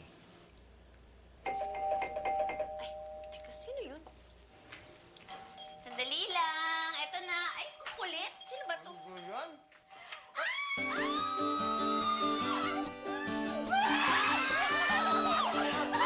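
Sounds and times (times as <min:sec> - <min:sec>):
doorbell chime: 0:01.5 - 0:03.7, 0:05.3 - 0:10.2.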